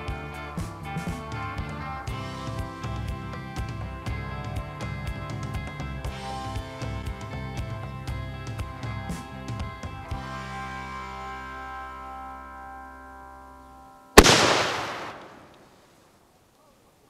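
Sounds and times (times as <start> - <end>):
background music: 0.0 - 15.1
firework blast with rushing tail: 14.2 - 15.6.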